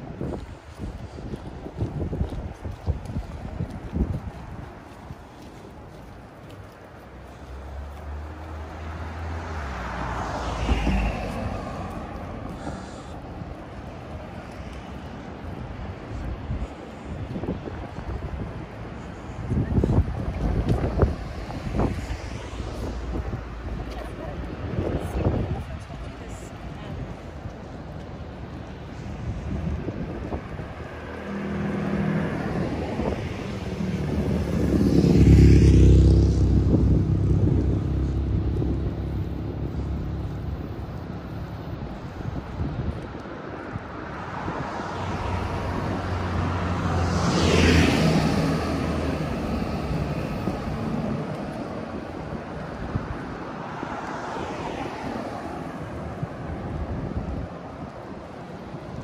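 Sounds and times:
cars driving past: 0.0s - 59.0s.

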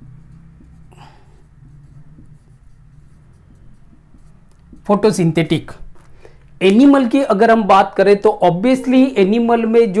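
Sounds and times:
low steady hum: 0.0s - 6.7s
marker pen writing on whiteboard: 0.0s - 10.0s.

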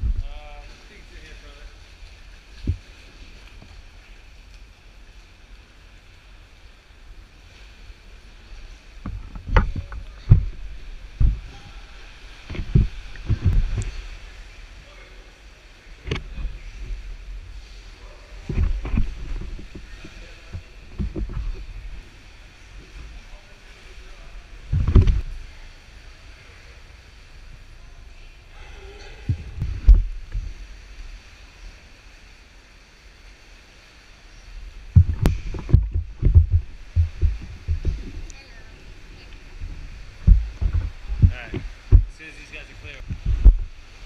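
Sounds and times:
dull low thumps: 0.0s - 0.4s, 2.6s - 3.0s, 9.0s - 14.2s, 18.4s - 23.2s, 24.6s - 25.5s, 29.2s - 30.6s, 34.7s - 44.0s
faint water wash: 0.0s - 44.0s
sea rumbling in a cave: 0.0s - 44.0s.

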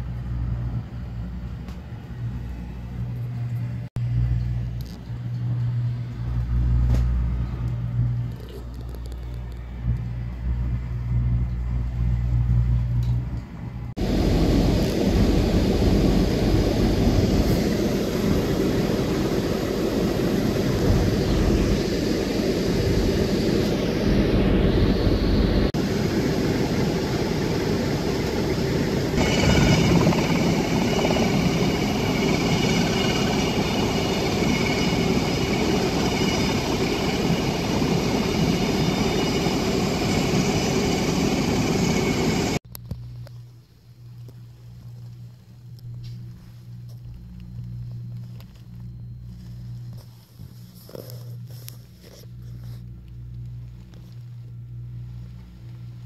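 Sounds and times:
military vehicle engine noise: 0.0s - 42.6s
high whining tones: 14.0s - 42.6s.

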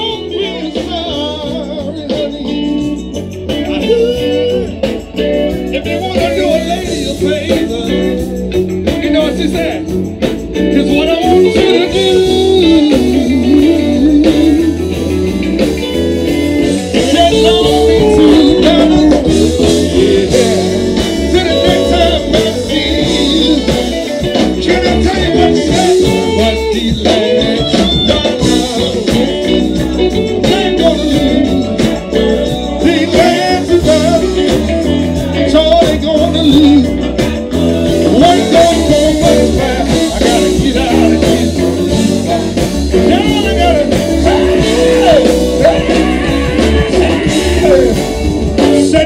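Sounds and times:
live blues band playing: 0.0s - 49.0s
person singing: 0.0s - 49.0s.

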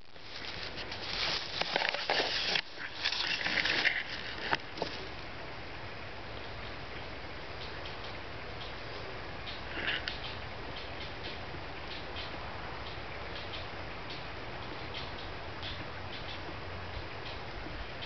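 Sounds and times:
wooden sticks rustling and scraping: 0.0s - 5.2s
steady hiss: 0.0s - 18.0s.

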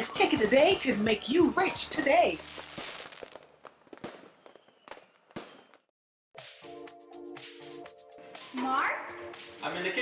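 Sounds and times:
fireworks bangs: 0.2s - 5.9s
fireworks crackling: 0.2s - 5.9s.

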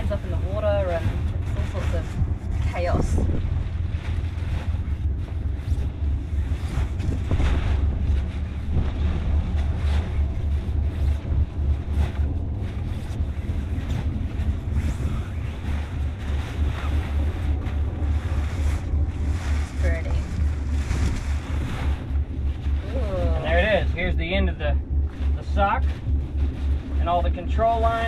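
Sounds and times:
sailcloth rustling: 0.0s - 28.0s
wind buffeting microphone: 0.0s - 28.0s.

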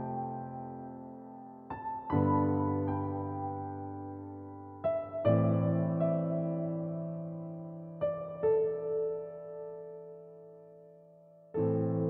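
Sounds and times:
slow soft piano music: 0.0s - 12.0s.

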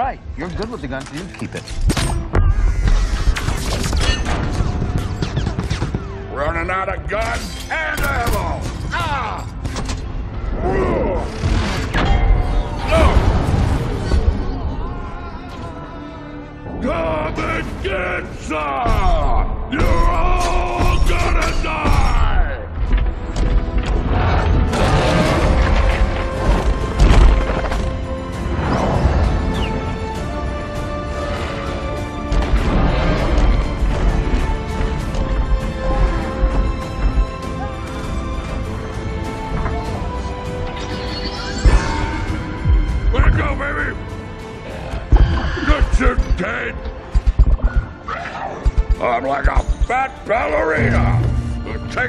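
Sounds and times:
film music score: 0.0s - 52.0s.

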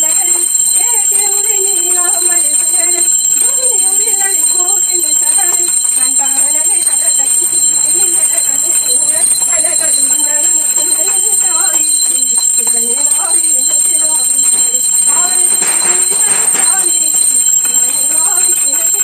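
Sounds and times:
small hand bell ringing: 0.0s - 19.0s
voices singing a prayer: 0.0s - 19.0s.

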